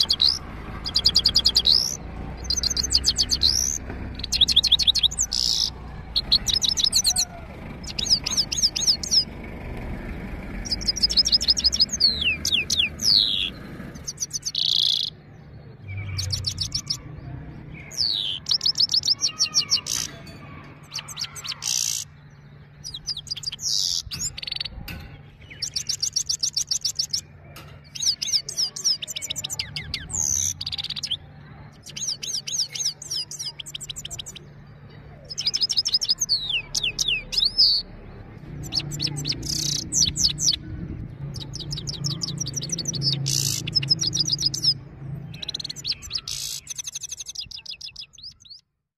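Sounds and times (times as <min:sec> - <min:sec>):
finch singing: 0:00.0 - 0:48.7.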